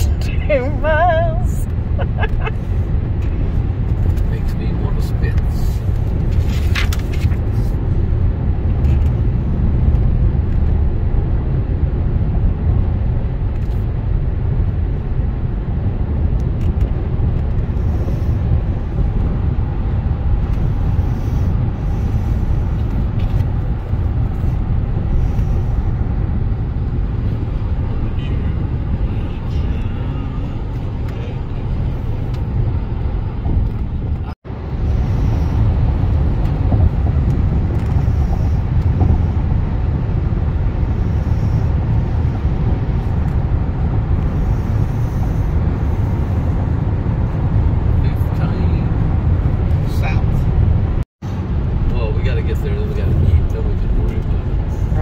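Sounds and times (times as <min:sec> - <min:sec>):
car cabin road and engine rumble: 0:00.0 - 0:55.0.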